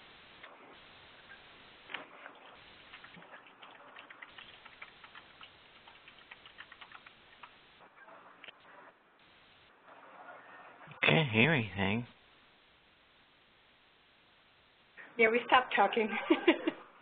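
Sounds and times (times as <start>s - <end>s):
faint irregular clicking: 2.9s - 7.6s.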